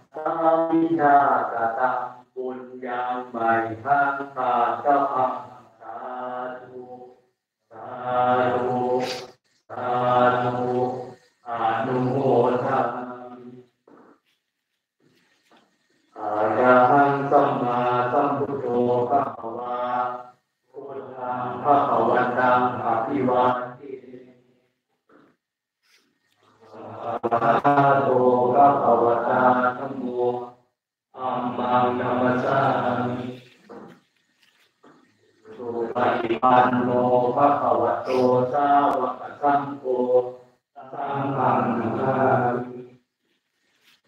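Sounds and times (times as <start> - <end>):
men chanting in unison: 0.0 - 13.6, 16.1 - 24.5, 26.6 - 33.9, 35.4 - 43.0.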